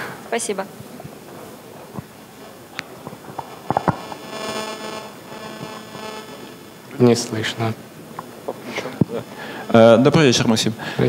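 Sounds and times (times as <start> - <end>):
sound system hum: 1.1 - 10.2.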